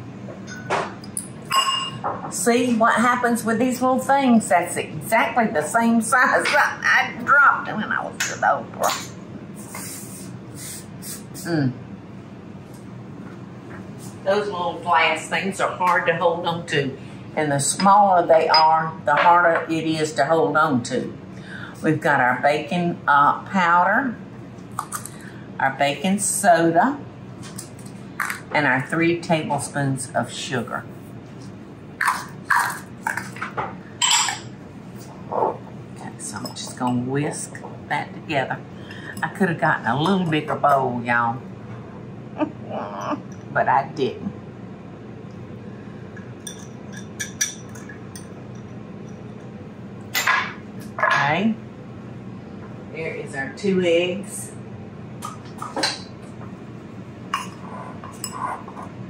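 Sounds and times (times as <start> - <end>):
glass dishes clinking: 0.4 - 2.3, 17.8 - 19.4, 34.0 - 34.5, 46.2 - 49.2
glassy ring: 0.5 - 2.0.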